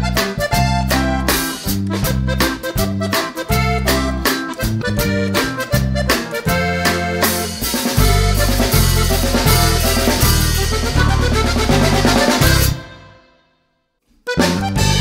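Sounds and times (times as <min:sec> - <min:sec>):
instrumental music with beat: 0:00.0 - 0:15.0.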